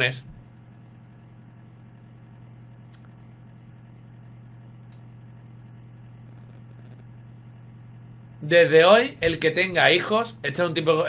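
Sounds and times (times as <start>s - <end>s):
low electrical hum: 0.0s - 11.0s
faint click: 2.8s - 3.2s, 4.8s - 5.2s.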